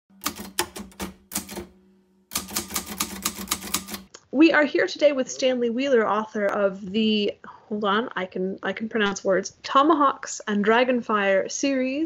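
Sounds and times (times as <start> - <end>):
typewriter keys striking: 0.1 - 4.1.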